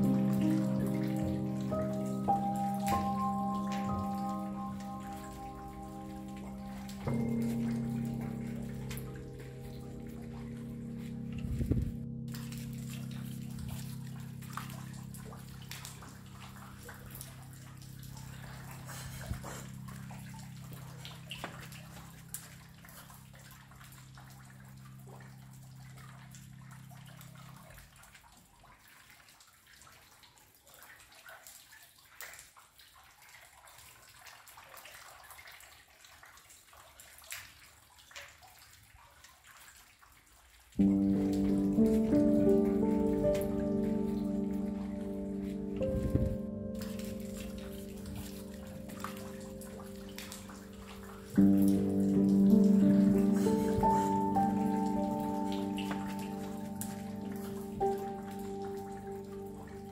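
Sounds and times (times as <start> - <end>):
calm music with held low chord: 0.0 - 28.0, 40.8 - 59.9
raindrops and drips: 0.0 - 59.9.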